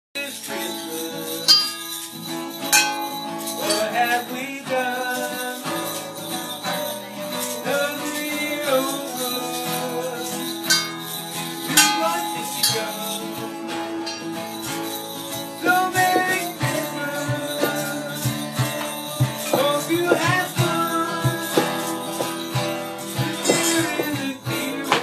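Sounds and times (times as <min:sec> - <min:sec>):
acoustic guitar: 0:00.2 - 0:25.0
jingling percussion shaken: 0:00.2 - 0:25.0.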